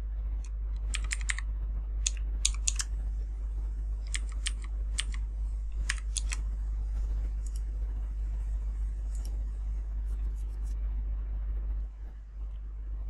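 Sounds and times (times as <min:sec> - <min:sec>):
steady low hum: 0:00.0 - 0:13.0
keyboard typing: 0:00.8 - 0:01.4, 0:02.0 - 0:02.9, 0:04.0 - 0:06.4.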